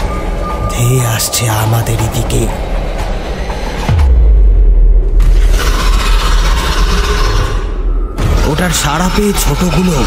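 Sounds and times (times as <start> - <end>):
deep rumble: 0.0 - 10.0.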